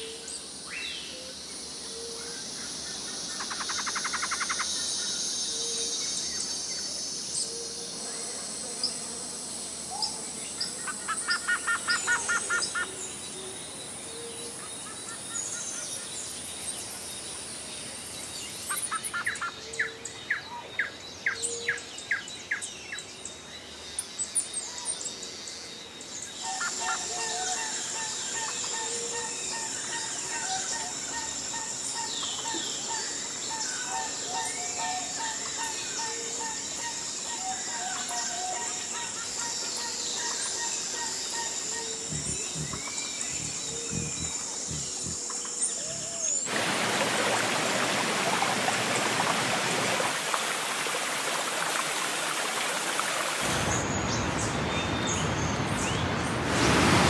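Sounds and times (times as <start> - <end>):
insect buzz: 0.0 - 19.4, 20.3 - 57.0
birds chirping: 39.2 - 46.7.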